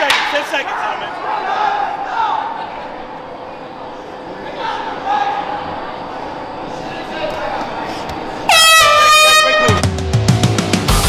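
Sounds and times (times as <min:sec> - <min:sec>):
air horn blast: 0:08.4 - 0:10.0
music with heavy beat: 0:09.6 - 0:11.0.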